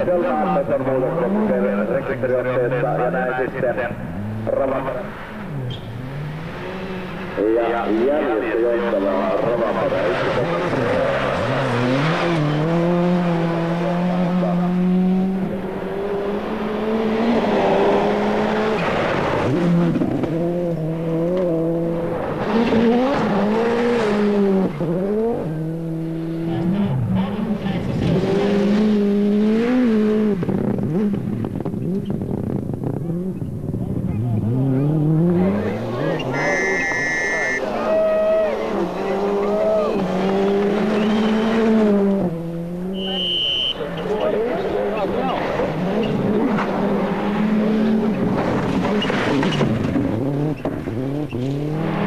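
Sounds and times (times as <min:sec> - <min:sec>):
rally car engine revving: 0:00.0 - 0:52.0.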